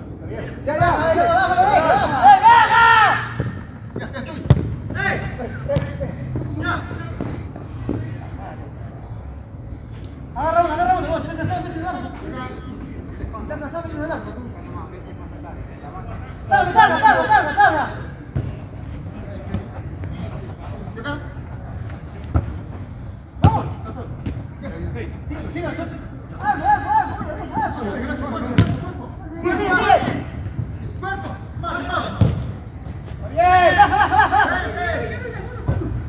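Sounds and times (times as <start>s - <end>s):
footballers shouting: 0.2s - 8.2s, 10.4s - 12.8s, 16.4s - 21.4s, 23.2s - 24.4s, 25.0s - 36.0s
football being kicked: 23.4s - 24.4s, 28.6s - 28.8s, 32.2s - 32.6s.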